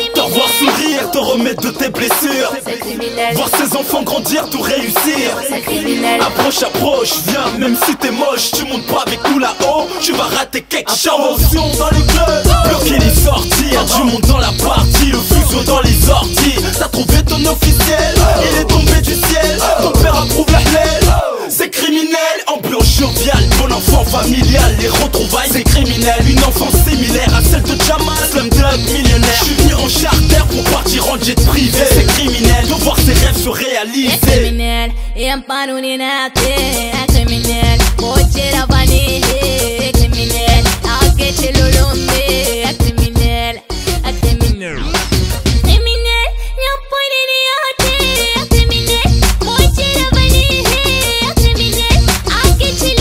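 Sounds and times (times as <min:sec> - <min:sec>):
rapping over a beat: 0:00.0 - 0:53.0
heavy bass line: 0:11.4 - 0:21.4, 0:22.8 - 0:35.4, 0:36.4 - 0:46.7, 0:47.8 - 0:53.0.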